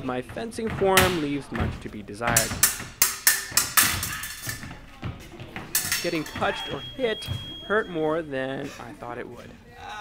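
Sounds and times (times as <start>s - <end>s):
fencing blades clashing: 0.7s - 8.2s.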